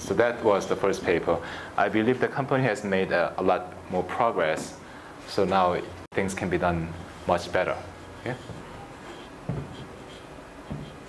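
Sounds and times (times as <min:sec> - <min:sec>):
soft thump: 0:09.4 - 0:09.9, 0:10.7 - 0:11.0.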